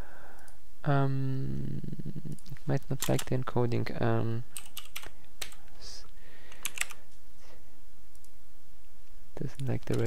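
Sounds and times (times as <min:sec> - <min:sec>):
computer keyboard keystrokes: 0:02.3 - 0:03.3, 0:04.6 - 0:05.6, 0:06.5 - 0:07.0, 0:09.5 - 0:10.0.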